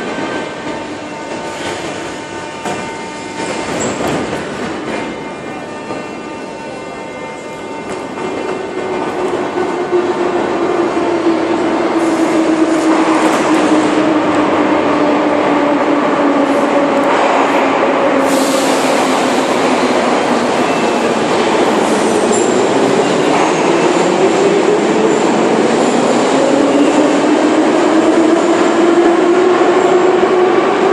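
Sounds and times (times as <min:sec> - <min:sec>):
metro train running: 0:00.0 - 0:30.9.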